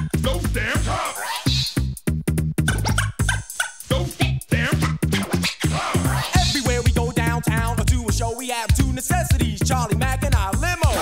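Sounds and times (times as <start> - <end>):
choppy sampled stabs: 0.0 - 11.0
hip hop drum machine beat: 0.0 - 11.0.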